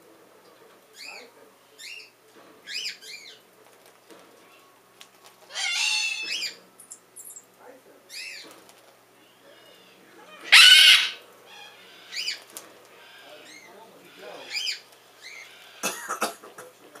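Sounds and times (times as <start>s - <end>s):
cockatoos screeching: 5.5s - 6.6s, 9.3s - 15.9s.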